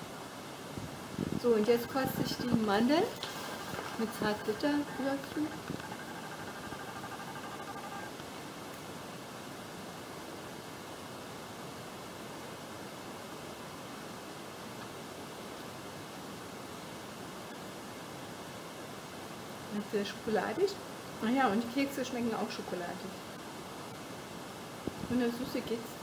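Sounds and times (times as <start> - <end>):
steady background hiss: 0.0 - 26.0
faint high tones: 1.8 - 8.2.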